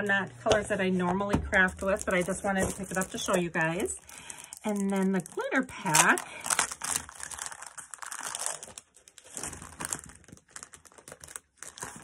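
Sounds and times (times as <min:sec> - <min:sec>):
plastic bag crinkling: 0:01.6 - 0:12.0.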